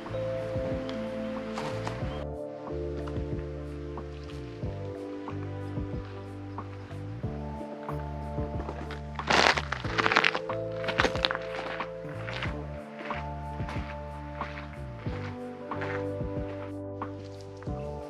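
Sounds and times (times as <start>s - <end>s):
background music with sustained chords: 0.0s - 18.0s
light percussive beat: 0.0s - 18.0s.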